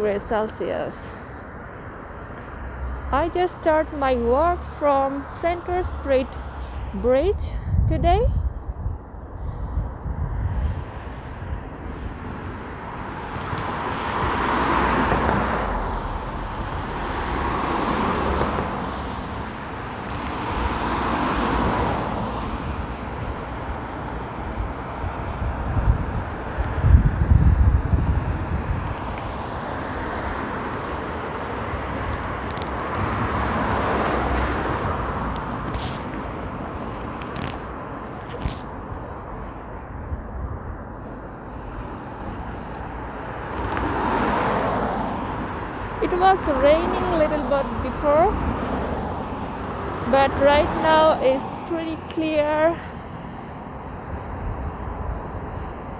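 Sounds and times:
cars passing on wet road: 0.0 - 7.0, 9.3 - 55.9
city traffic background: 0.0 - 55.9.

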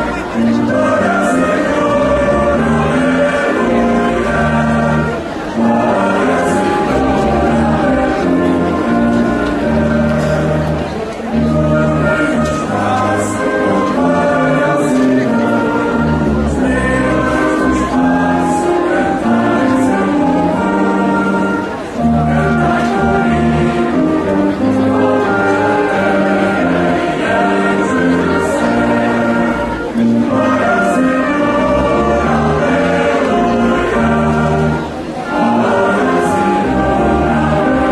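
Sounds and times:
choir singing a slow hymn: 0.0 - 37.9.

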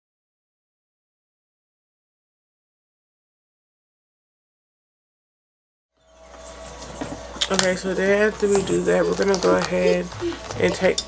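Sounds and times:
steady low hum: 6.0 - 11.0.

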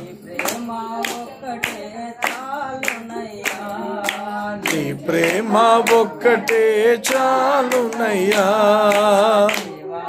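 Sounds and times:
hand claps keeping time: 0.0 - 9.9
unaccompanied worship singing: 0.0 - 10.0.

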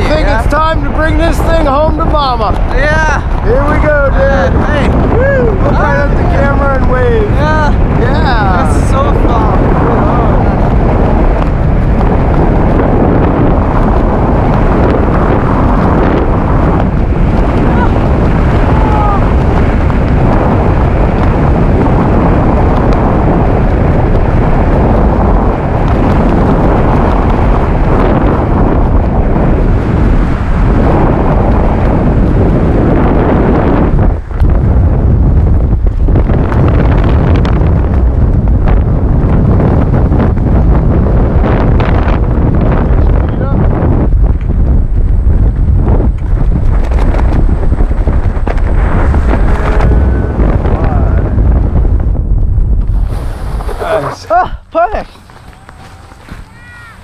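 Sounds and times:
wind rushing over microphone: 0.0 - 57.0
people whooping: 18.6 - 19.3, 55.4 - 57.0.

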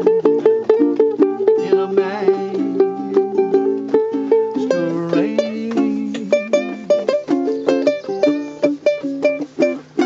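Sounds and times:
ukuleles playing: 0.0 - 10.0.

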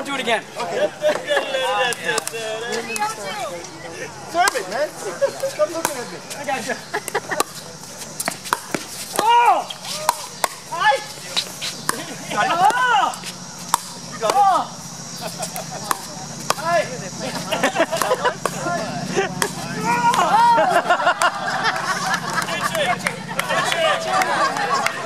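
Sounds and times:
people whooping: 9.1 - 11.0, 17.4 - 25.0.

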